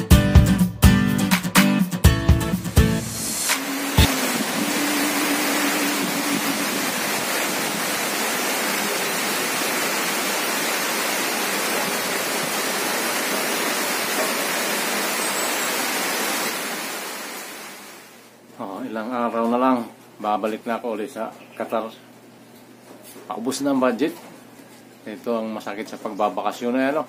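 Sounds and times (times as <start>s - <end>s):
heavy rain hiss: 3.0s - 18.3s.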